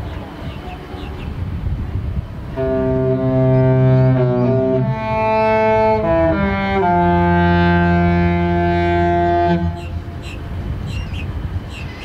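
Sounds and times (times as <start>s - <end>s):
ship horn deep note: 2.5s - 10.2s.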